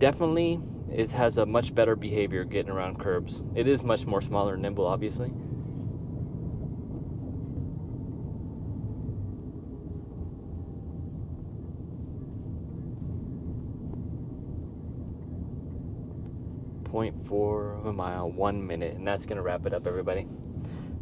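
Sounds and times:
tyre and wind rumble in car cabin: 0.0 - 21.0.

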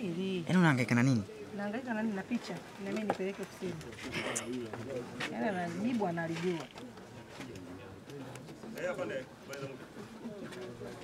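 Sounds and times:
background talk: 0.0 - 11.0.

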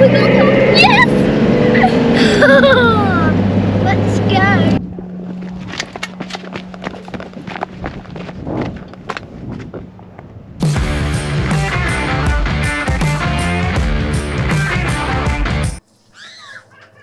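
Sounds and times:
engine and cabin drone: 0.0 - 8.1.

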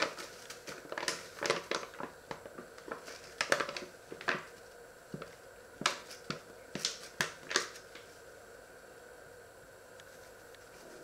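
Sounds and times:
paper bag crinkling: 0.0 - 8.1.

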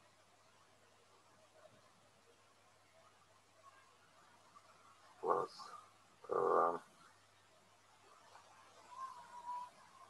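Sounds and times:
faint murmuring: 3.6 - 7.2.

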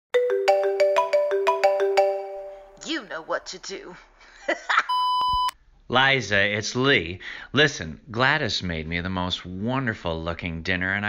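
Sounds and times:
mobile phone ringtone: 0.2 - 2.8.

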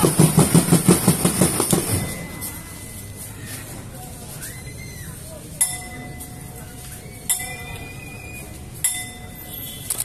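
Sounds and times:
drum beaten fast: 0.0 - 2.3.

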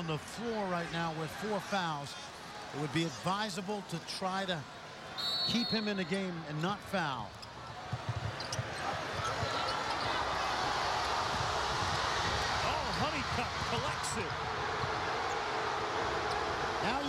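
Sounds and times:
sneakers squeaking on court: 7.4 - 10.4.

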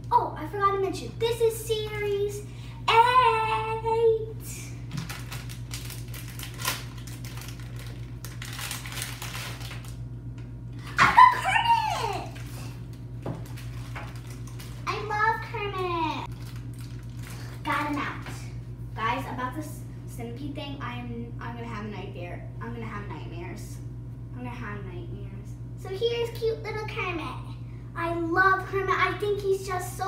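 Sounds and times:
steady low hum: 0.0 - 30.0
child exclaiming: 2.9 - 4.4, 11.0 - 12.4
foil bag crinkling open: 4.9 - 10.1, 11.9 - 15.1, 16.3 - 18.0.

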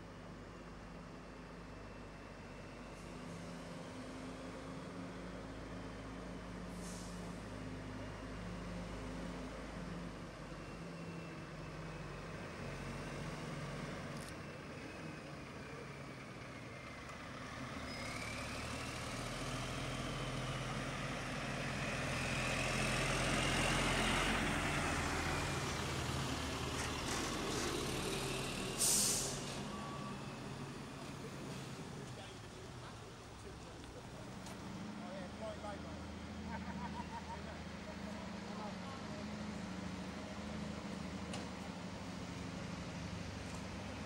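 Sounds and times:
lorry diesel engine: 0.0 - 44.0
air brake hiss: 6.7 - 7.4, 28.6 - 29.6.

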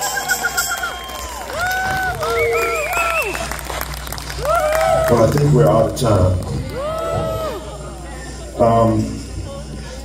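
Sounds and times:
crowd cheering: 0.0 - 8.1.

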